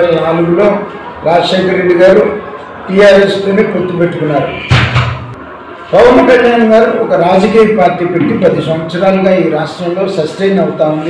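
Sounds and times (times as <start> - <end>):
man's voice: 5.9 - 11.0.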